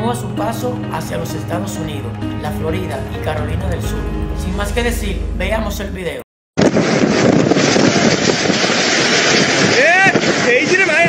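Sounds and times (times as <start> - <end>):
rain: 6.6 - 11.0
wind: 6.6 - 11.0
wind buffeting microphone: 6.6 - 11.0.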